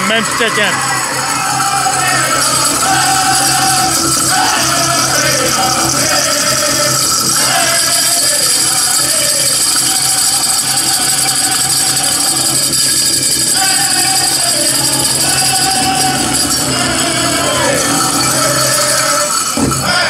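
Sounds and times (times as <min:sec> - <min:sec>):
big drum beating: 0:00.0 - 0:20.0
jingling bells: 0:00.0 - 0:20.0
men singing in high voices: 0:00.8 - 0:20.0.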